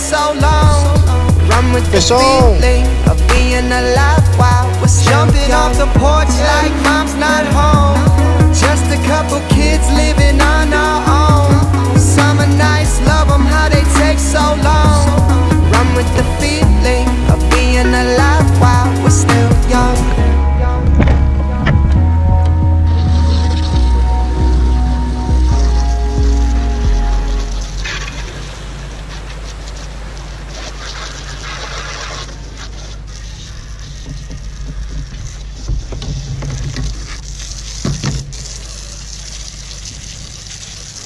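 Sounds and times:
garden hose spraying water: 0:00.0 - 0:20.2, 0:22.9 - 0:41.0
music with heavy bass: 0:00.0 - 0:28.2.

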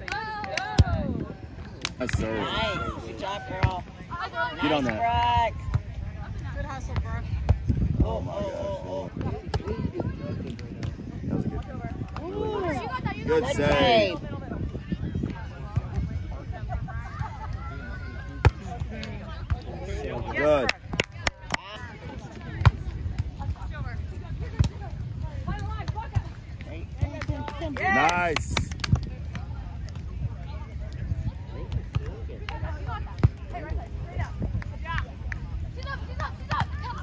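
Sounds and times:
distant voices and chatter: 0:00.0 - 0:37.0.

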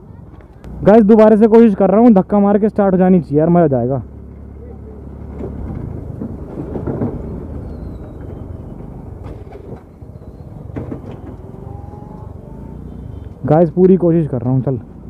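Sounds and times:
road and wind noise: 0:00.0 - 0:15.0.

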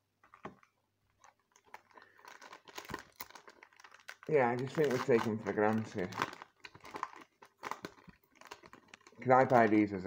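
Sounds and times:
foil wrapper crinkling: 0:00.6 - 0:10.0.

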